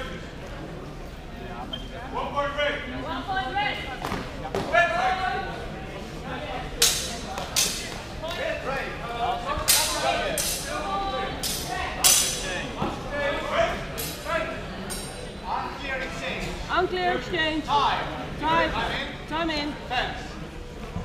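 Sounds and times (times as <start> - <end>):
swords clashing: 6.8 - 8.0, 9.7 - 10.7, 11.4 - 12.4.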